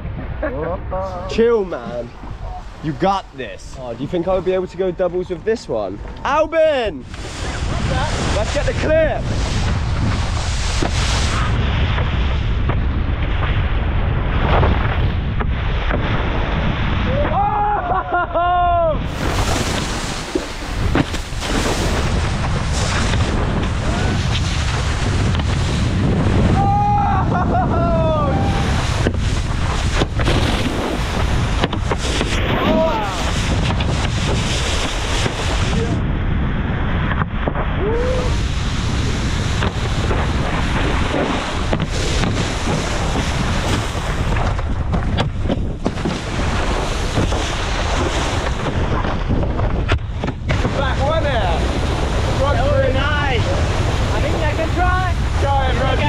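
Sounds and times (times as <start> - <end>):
wind buffeting microphone: 0.0 - 56.0
water rushing and spraying: 6.3 - 12.3, 18.9 - 36.0, 37.8 - 44.9, 50.0 - 56.0
people yelling: 17.1 - 19.1, 26.5 - 28.9, 32.4 - 33.4.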